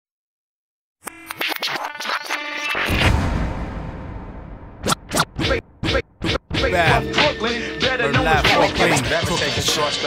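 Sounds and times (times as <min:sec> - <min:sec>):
turntable scratching: 0:01.1 - 0:03.0, 0:04.8 - 0:10.0.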